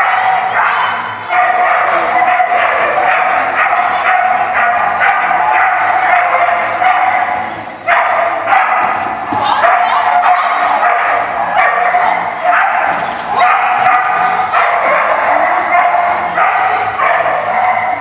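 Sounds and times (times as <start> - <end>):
voices: 0.0 - 18.0
dog yipping: 7.9 - 18.0.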